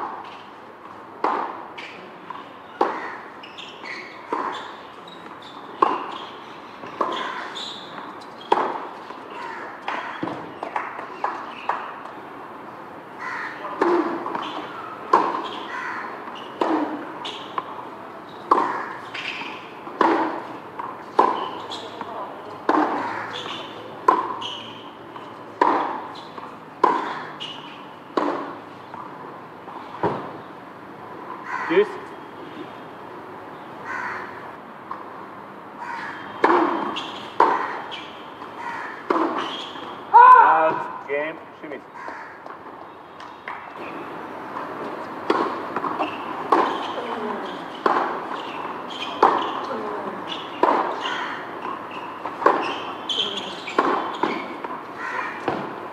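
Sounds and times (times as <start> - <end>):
tennis ball struck by rackets: 1.2 - 3.0, 5.8 - 6.3, 8.0 - 11.9, 13.8 - 15.6, 16.2 - 24.6, 25.2 - 29.1, 36.4 - 38.1, 39.0 - 39.9, 44.6 - 49.7, 50.3 - 54.8, 55.4 - 55.8.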